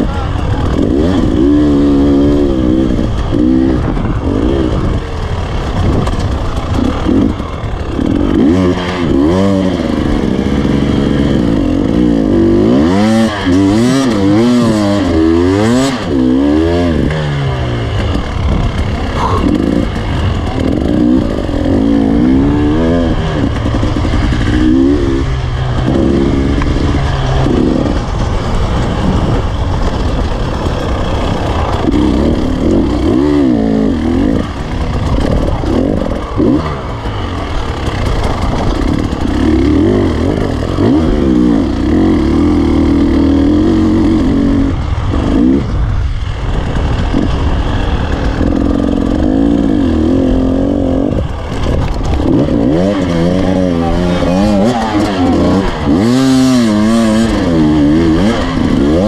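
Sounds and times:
motorcycle engine revving: 0.0s - 59.0s
motorcycle rattling: 0.0s - 59.0s.

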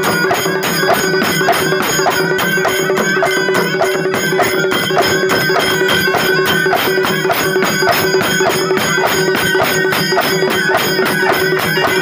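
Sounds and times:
fast steady drumbeats: 0.0s - 12.0s
held pipe note: 0.0s - 12.0s.

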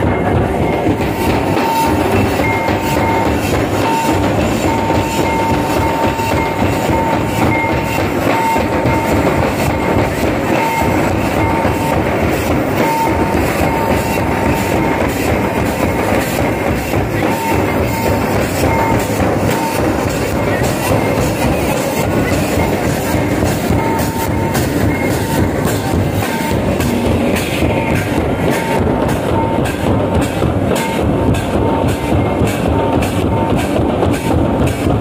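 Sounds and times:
crowd noise: 0.0s - 35.0s
dance drumming: 0.0s - 35.0s.

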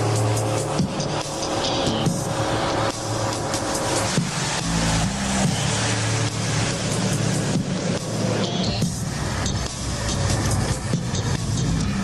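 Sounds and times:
car engine: 0.0s - 12.0s
road noise: 0.0s - 12.0s.

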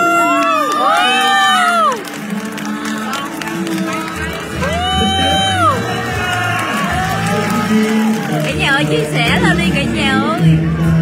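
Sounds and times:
person singing: 0.0s - 11.0s
bass: 3.1s - 11.0s.

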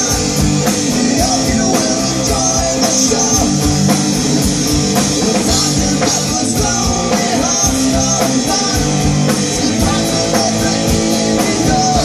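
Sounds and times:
drum and cymbal hits: 0.0s - 12.0s
live rock band playing: 0.0s - 12.0s.

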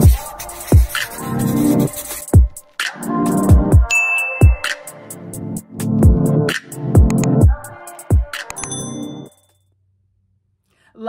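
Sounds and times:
electronic intro music with beat: 0.0s - 8.5s
bright ringing ding: 3.9s - 4.6s, 8.6s - 9.5s.

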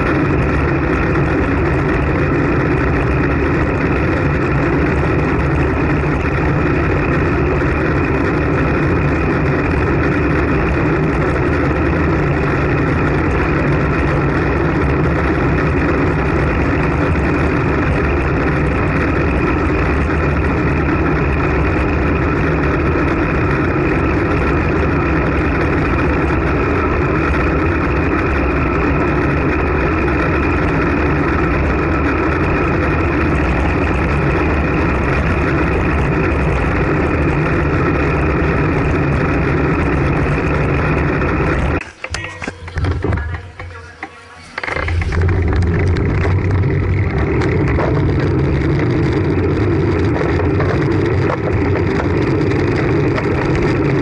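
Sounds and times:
wind rushing on microphone: 0.0s - 41.8s, 44.6s - 54.0s
road noise: 0.0s - 54.0s.

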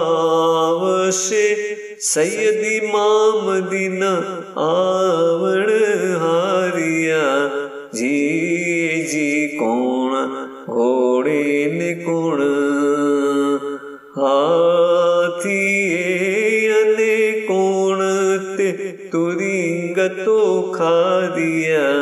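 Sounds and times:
person singing a devotional hymn: 0.0s - 22.0s.

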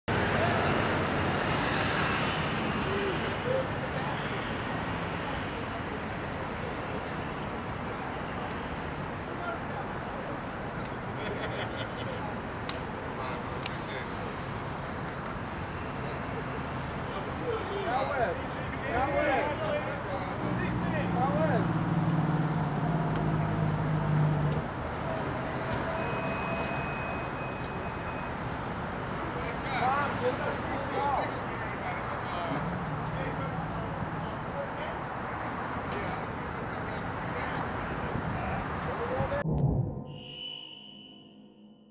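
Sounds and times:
traffic rumble: 0.1s - 40.1s
people talking: 15.9s - 21.7s.

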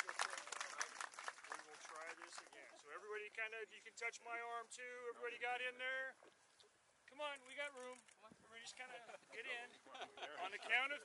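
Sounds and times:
hand clapping: 0.0s - 2.6s.

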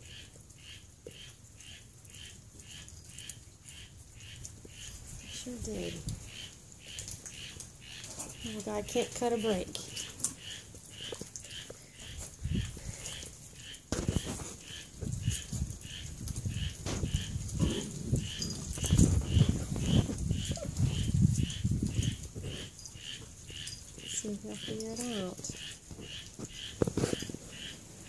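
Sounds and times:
puppies growling: 9.9s - 27.8s.

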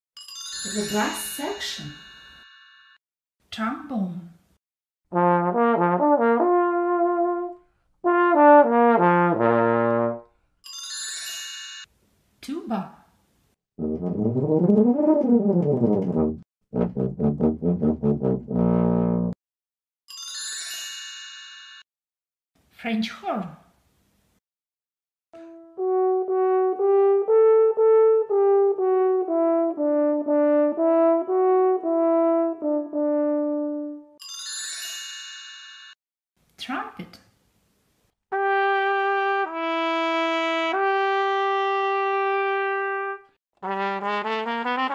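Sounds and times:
trombone sliding phrases: 5.1s - 10.2s, 13.8s - 19.4s, 25.4s - 34.0s, 38.4s - 44.9s
french horn playing a tune: 5.2s - 10.3s, 25.4s - 34.1s, 38.4s - 44.9s.

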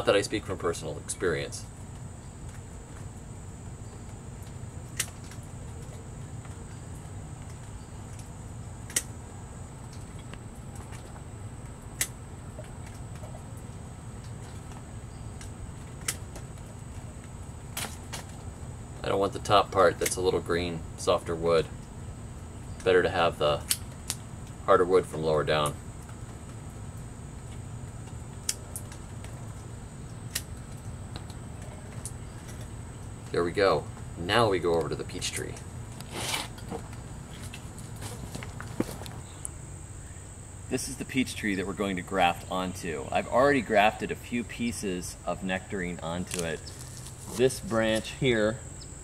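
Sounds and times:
faint high-pitched whine: 0.0s - 49.0s
outdoor background noise: 0.0s - 49.0s.

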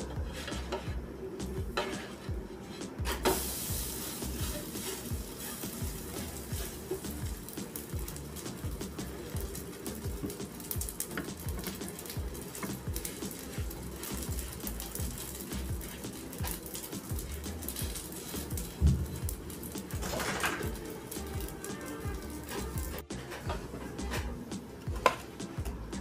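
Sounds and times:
background music with steady beat: 0.0s - 26.0s
bread sizzling in a pan: 0.0s - 26.0s.

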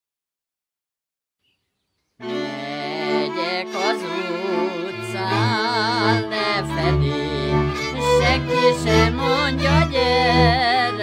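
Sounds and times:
fiddle melody with vibrato: 2.2s - 11.0s
folk string band playing: 2.2s - 11.0s.

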